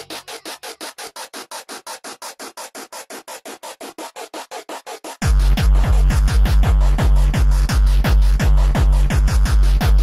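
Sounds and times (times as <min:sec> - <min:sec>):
electronic track bass: 0:00.0 - 0:10.0.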